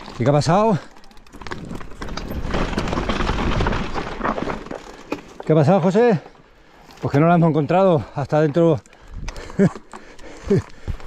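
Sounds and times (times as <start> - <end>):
bike tyres crunching on gravel: 0.0 - 6.2
bike and camera rattling: 0.0 - 11.0.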